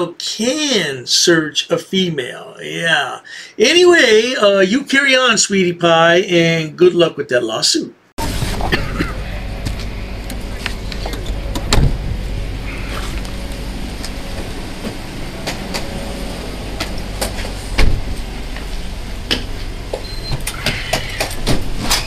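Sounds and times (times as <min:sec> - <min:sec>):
car engine idling: 0:08.2 - 0:21.8
loud thumps: 0:08.2 - 0:22.0.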